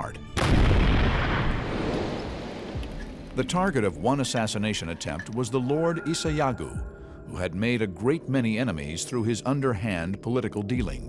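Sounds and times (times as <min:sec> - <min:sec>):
explosion blast: 0:00.4 - 0:02.8.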